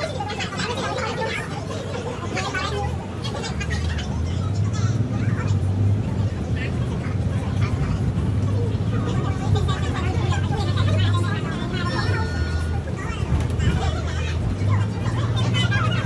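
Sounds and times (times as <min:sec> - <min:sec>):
bus engine drone: 0:00.0 - 0:16.0
passengers talking: 0:00.0 - 0:16.0.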